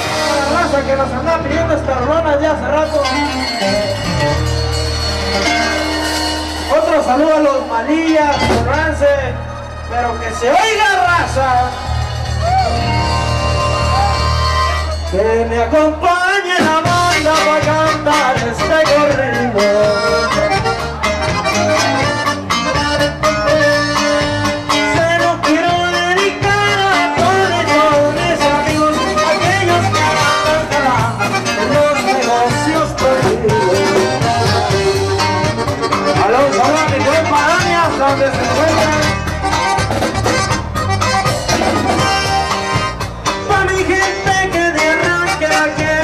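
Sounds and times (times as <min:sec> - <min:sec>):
live accordion band music: 0:00.0 - 0:46.0.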